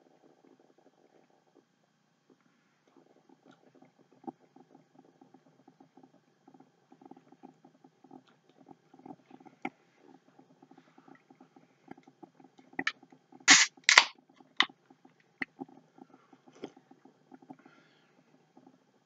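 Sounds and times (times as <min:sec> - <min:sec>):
drink can tab opening: 0:13.5 - 0:14.1.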